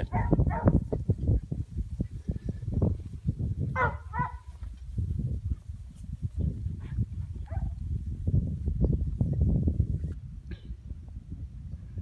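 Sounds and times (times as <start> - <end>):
wind buffeting microphone: 0.0 - 12.0
dog barking: 0.1 - 0.8, 3.8 - 4.5, 6.8 - 7.8.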